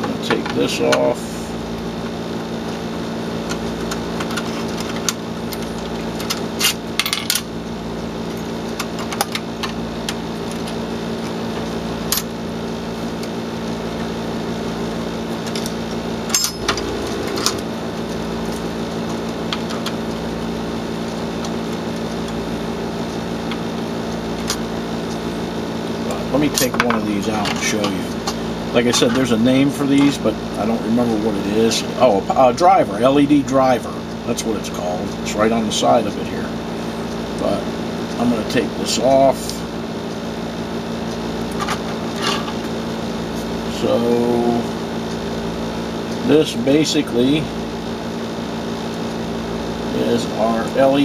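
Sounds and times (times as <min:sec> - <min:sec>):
steady background hum: 0:00.0 - 0:51.0.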